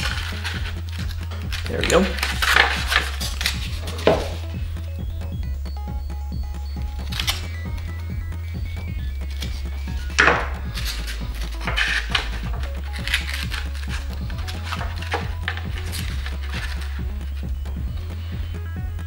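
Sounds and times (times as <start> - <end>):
foam board rubbing on table: 0.0 - 4.6, 9.3 - 18.6
quiet background music: 0.0 - 19.0.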